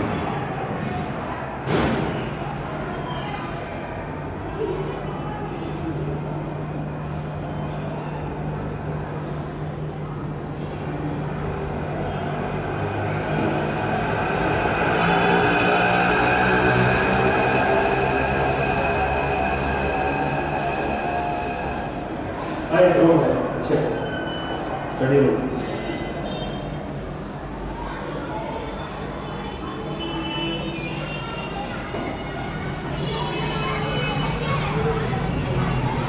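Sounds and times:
rumbling noise with hum: 8.4s - 22.4s.

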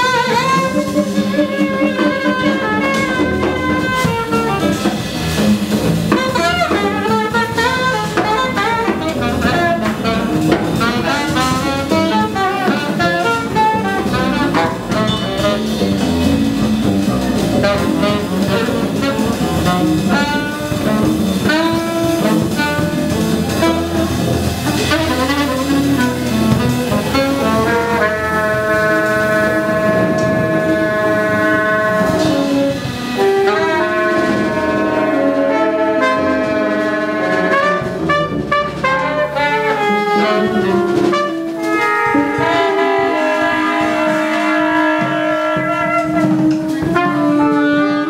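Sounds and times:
drum kit with cymbals: 0.0s - 48.0s
long held horn notes: 0.0s - 48.0s
saxophone playing fast line: 0.0s - 48.0s
walking double bass: 0.0s - 48.0s.

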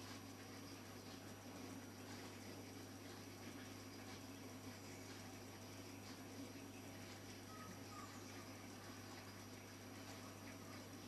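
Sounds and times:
faint low hum with hiss: 0.0s - 11.0s.

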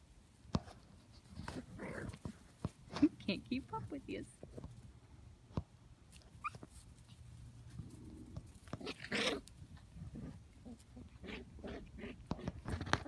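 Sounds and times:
puppies yipping and squeaking: 6.2s - 7.2s.

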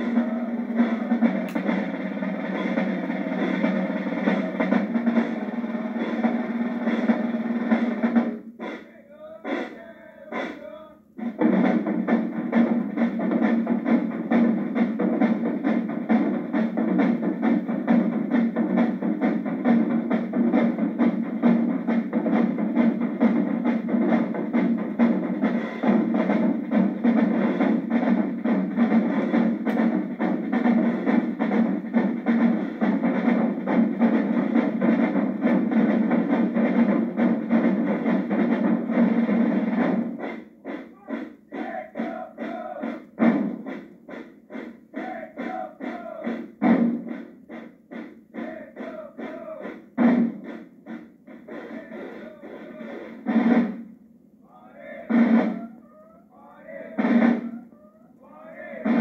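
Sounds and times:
marching snare and tenor drums: 0.0s - 54.0s, 54.7s - 57.8s, 58.4s - 59.0s.

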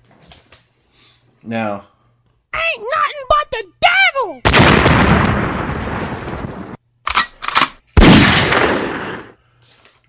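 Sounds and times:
loud gunshot blasts: 4.5s - 6.4s, 8.0s - 9.3s.

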